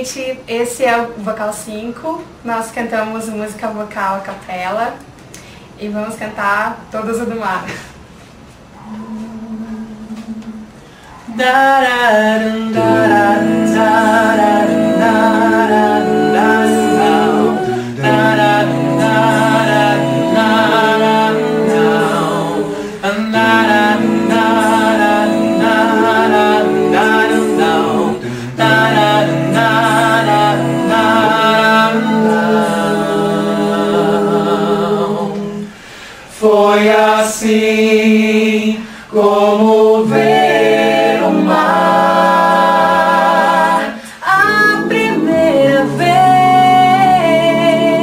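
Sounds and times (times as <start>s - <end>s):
a cappella group singing: 8.8s - 48.0s.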